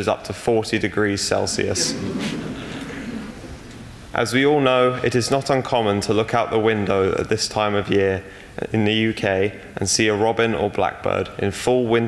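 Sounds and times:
congregation laughing: 1.3s - 4.1s.

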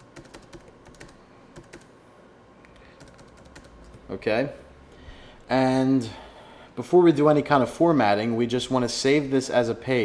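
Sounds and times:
computer keyboard typing: 0.0s - 1.9s, 2.7s - 4.0s.

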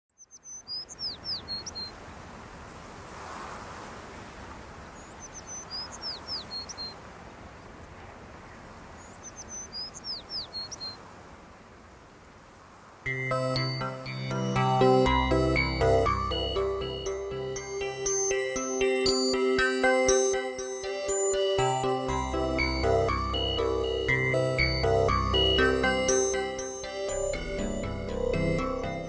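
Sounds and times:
songbird whistles and chirps: 0.2s - 1.9s
music with sustained tones: 13.1s - 29.0s.

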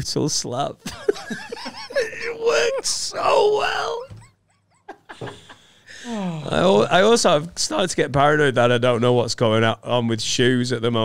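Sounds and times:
men laughing: 0.8s - 6.2s.

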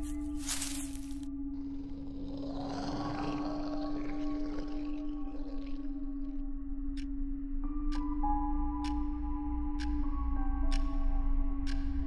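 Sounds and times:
low ambient drone: 0.0s - 12.0s.

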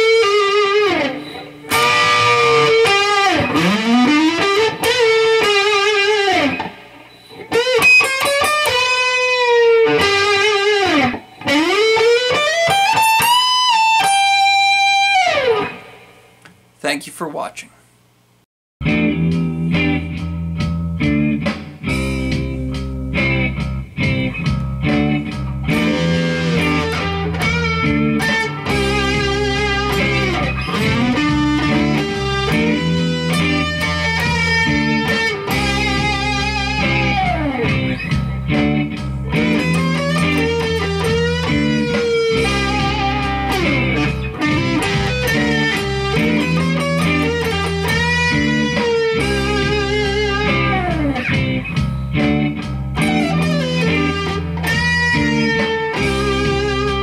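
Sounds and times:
electric guitar blues solo: 0.0s - 16.1s, 18.8s - 57.0s.

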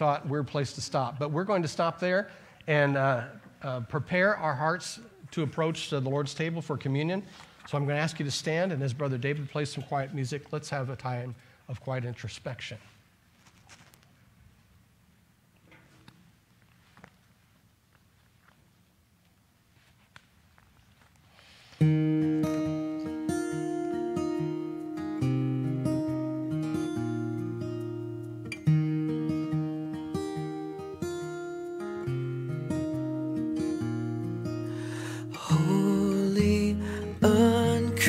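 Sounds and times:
acoustic guitar music: 21.8s - 38.0s.

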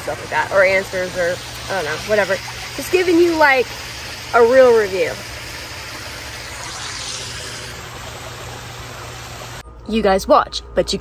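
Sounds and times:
low hum: 5.4s - 11.0s
steady rushing noise: 6.2s - 8.5s.

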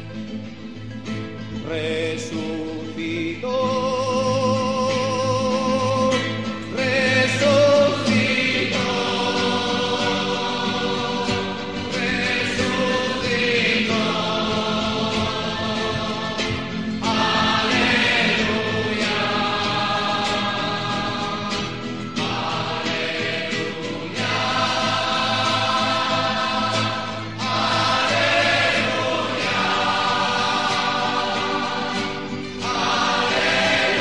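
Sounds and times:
choir singing held chords: 2.2s - 34.0s.

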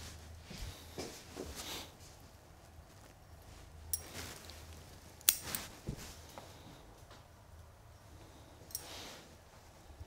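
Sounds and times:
branches and needles rustling: 0.0s - 7.0s
metallic hand tool clicks: 5.2s - 5.6s.

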